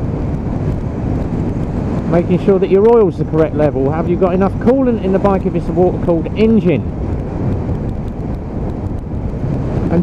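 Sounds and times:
motorcycle engine cruising: 0.0 - 10.0
wind rush on microphone: 0.0 - 10.0.

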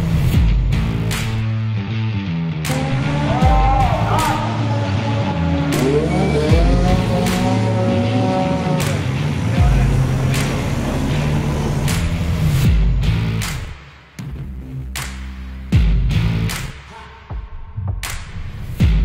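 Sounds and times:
rock music with steady beat: 0.0 - 16.8
car engine revving: 2.6 - 13.8.

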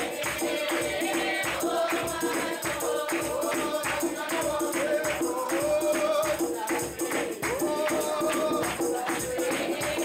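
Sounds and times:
congregation singing a hymn: 0.0 - 10.0
tambourine beat: 0.0 - 10.0.

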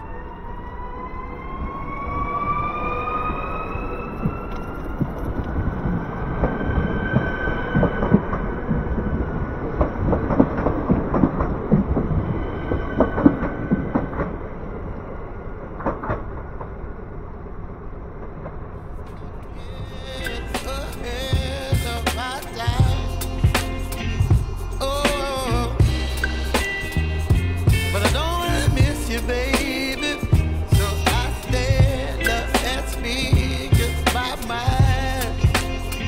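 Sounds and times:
traction motor whine: 18.8 - 36.0.

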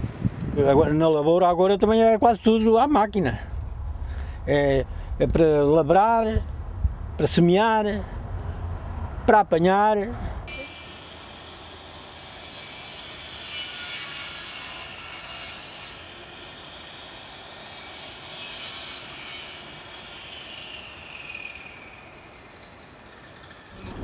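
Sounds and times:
distant city traffic: 6.4 - 24.0
high-pitched squeals: 10.5 - 24.0.

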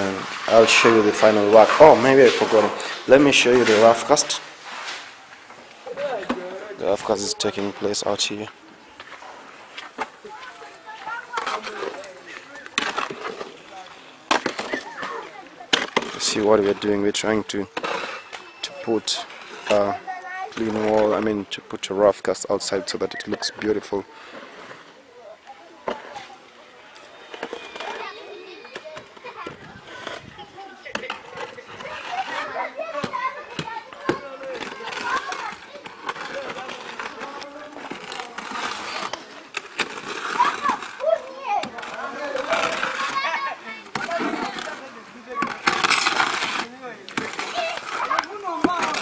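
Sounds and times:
children chattering and calling out: 0.0 - 49.0
faint voices: 0.0 - 49.0
trowel strokes on wet mortar: 9.1 - 17.0, 29.7 - 49.0.

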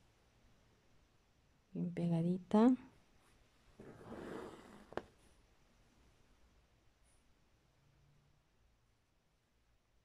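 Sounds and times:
thread rasping through fabric: 3.8 - 5.2.

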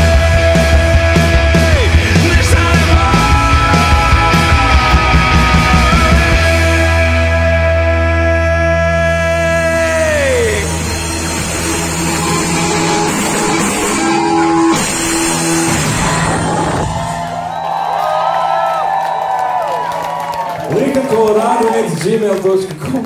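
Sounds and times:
rock band playing live: 0.0 - 18.2
crowd shouting and cheering: 0.0 - 23.0.

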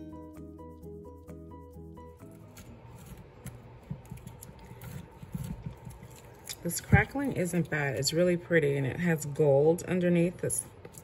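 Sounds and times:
background music: 0.0 - 5.2.

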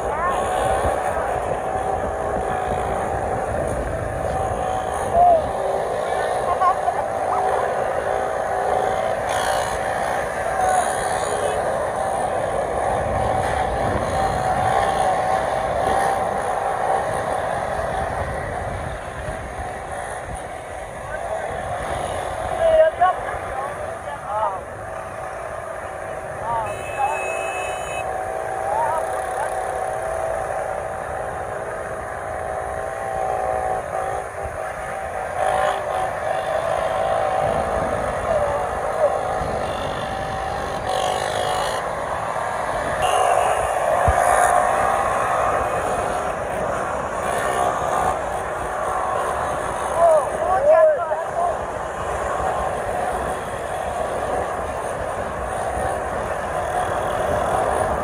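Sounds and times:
motorcycle engines at high revs: 0.0 - 58.0.

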